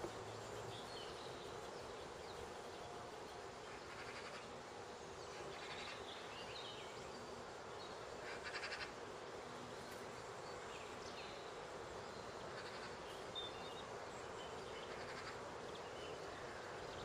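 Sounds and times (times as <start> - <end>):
background hiss: 0.0 - 17.0
songbirds chirping: 0.0 - 17.0.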